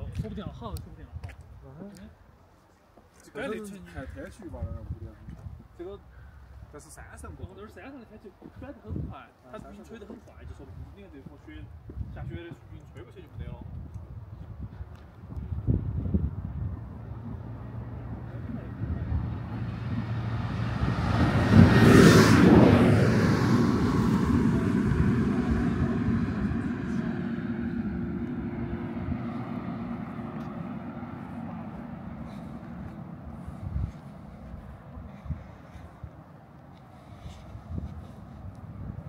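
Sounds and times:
vehicle driving past: 15.6 - 36.1.

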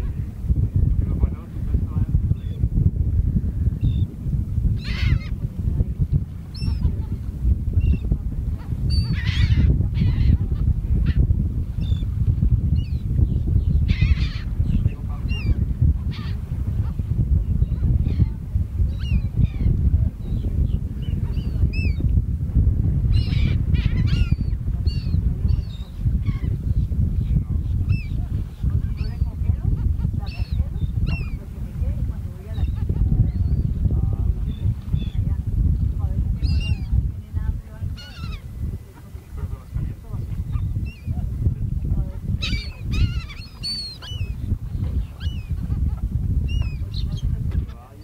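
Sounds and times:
wind rumble on microphone: 0.0 - 48.0
birds calling: 3.8 - 4.1, 4.8 - 5.4, 6.4 - 7.2, 7.8 - 22.1, 23.1 - 35.4, 36.0 - 41.6, 42.2 - 48.0.

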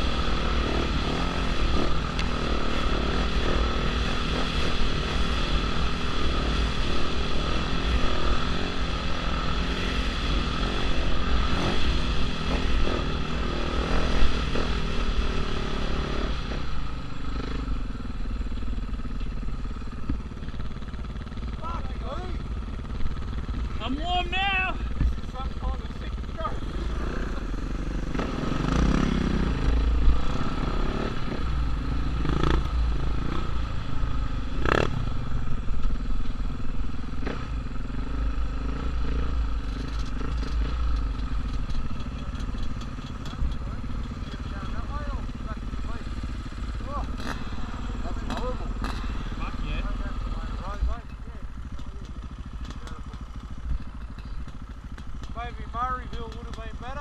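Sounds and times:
dirt bike engines idling: 0.0 - 57.0.

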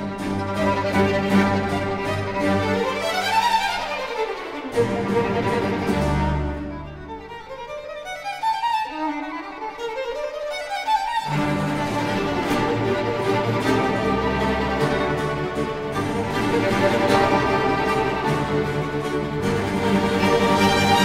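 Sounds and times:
string orchestra with harpsichord: 0.0 - 21.0.

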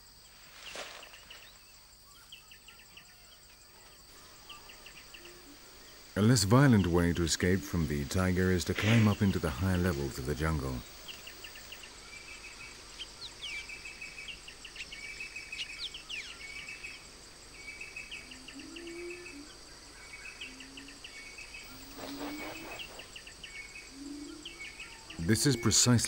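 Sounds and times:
high insect drone: 0.0 - 26.0
bird chirping: 0.6 - 26.0
low hooting calls: 21.7 - 23.2.

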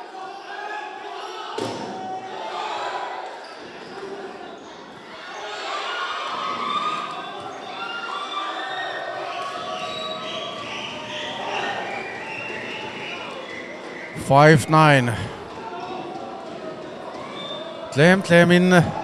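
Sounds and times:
players shouting: 14.2 - 15.4, 18.0 - 19.0
crowd voices: 14.2 - 15.5, 18.0 - 19.0.

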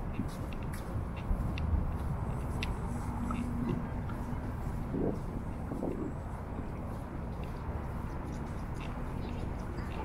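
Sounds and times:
distant road traffic: 0.0 - 10.0
footsteps on sand: 0.0 - 10.0.

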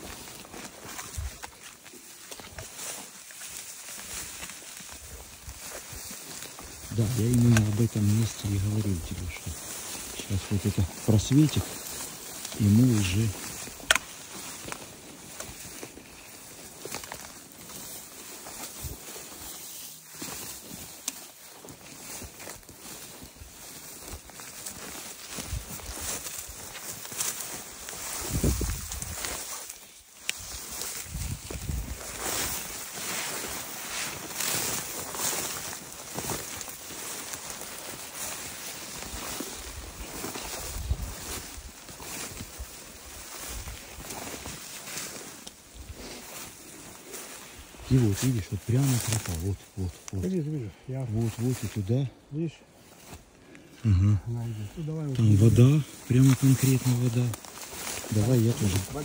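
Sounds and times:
footsteps through brush: 0.0 - 59.0
rustling of branches: 0.0 - 59.0.

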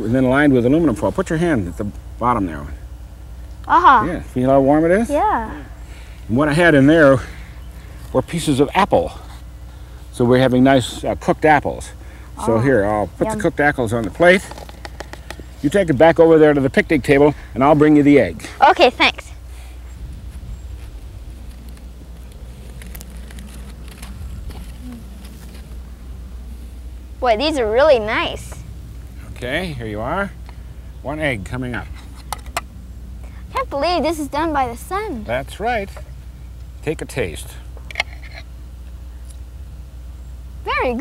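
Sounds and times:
low background hum: 0.0 - 41.0
steady low rumble: 0.0 - 41.0
faint rustles: 18.4 - 27.2.

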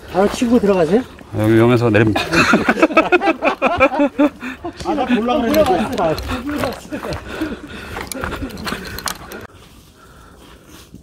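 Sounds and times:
mountain bike rattling on trail: 0.0 - 9.6
man talking: 0.1 - 2.5, 4.7 - 7.4.

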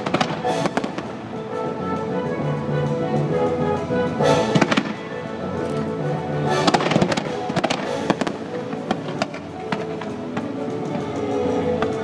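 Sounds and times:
fireworks bursting and crackling: 0.0 - 1.8, 4.3 - 12.0
music over loudspeakers: 0.0 - 12.0.

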